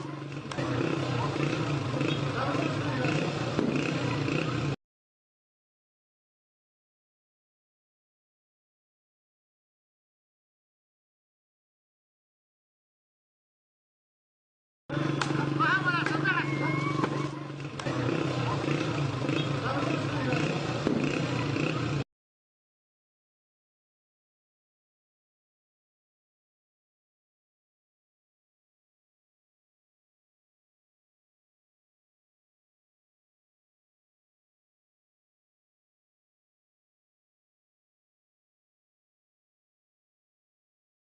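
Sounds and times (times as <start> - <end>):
sharp crack: 15.2 - 15.4
voices with high cries: 15.4 - 21.7.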